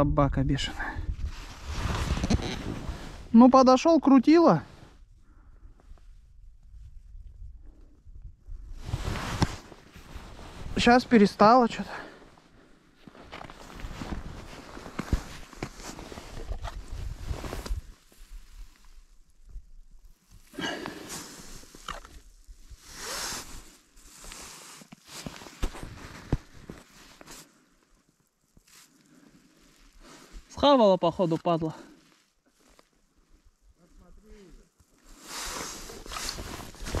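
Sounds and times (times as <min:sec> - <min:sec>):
shuffling and scraping: 0:08.8 - 0:12.4, 0:13.0 - 0:18.0, 0:23.0 - 0:27.5, 0:35.2 - 0:37.0.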